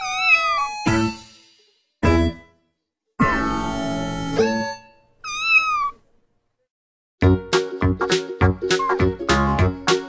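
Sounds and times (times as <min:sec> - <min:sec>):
kitten meowing: 0:00.0 - 0:00.9, 0:05.2 - 0:06.0.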